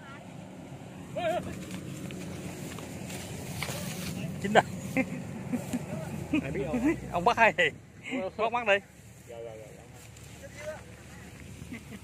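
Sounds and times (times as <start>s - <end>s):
steady low rumble: 0.0s - 8.0s
dry straw rustling: 1.2s - 7.5s, 8.6s - 12.0s.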